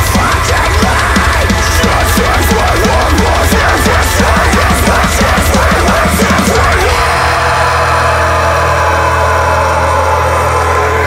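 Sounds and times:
distorted guitar and bass chord: 0:00.0 - 0:11.0.

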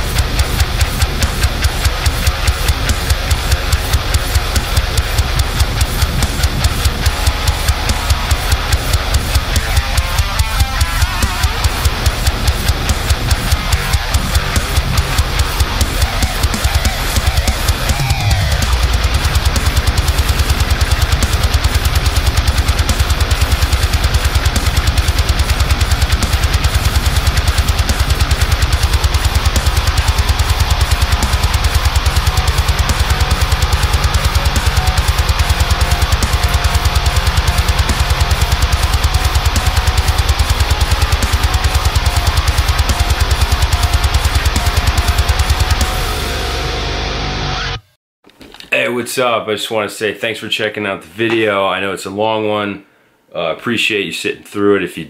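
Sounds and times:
drums with fast kick: 0:00.0 - 0:47.1
distorted electric guitar: 0:00.0 - 0:48.6.

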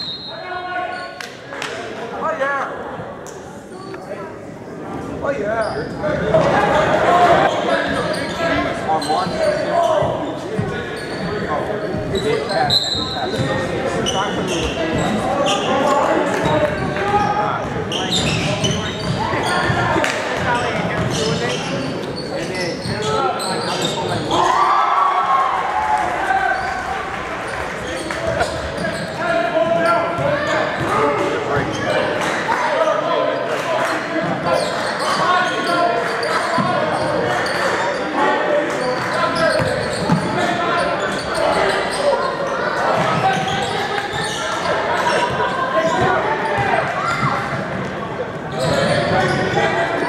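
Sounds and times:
echoing hubbub of voices: 0:00.0 - 0:50.0.

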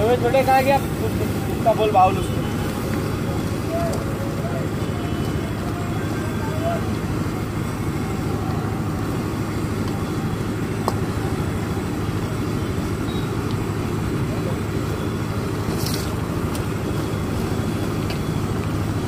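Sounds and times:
gas burner roaring: 0:00.0 - 0:19.0.

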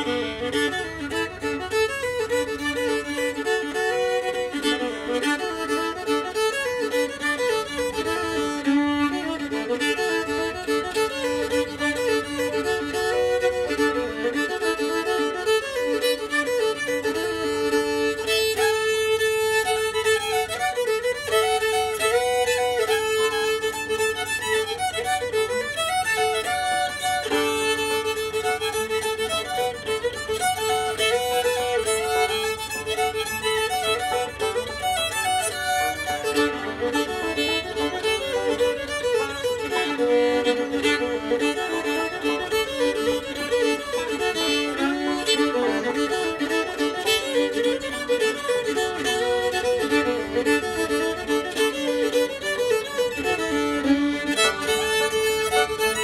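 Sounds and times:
fiddle playing lively melody: 0:00.0 - 0:56.0.

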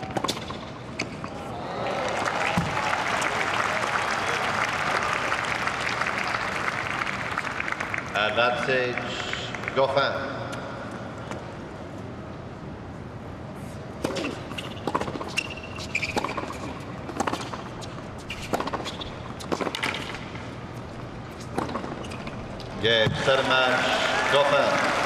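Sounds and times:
rackets hitting tennis ball: 0:00.0 - 0:01.4, 0:14.0 - 0:23.4
shoe squeak: 0:14.1 - 0:20.0, 0:21.3 - 0:22.5.

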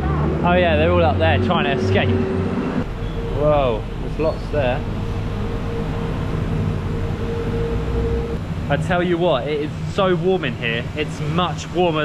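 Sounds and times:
low machine hum and rushing: 0:00.0 - 0:12.0
faint steady whine: 0:02.8 - 0:12.0.

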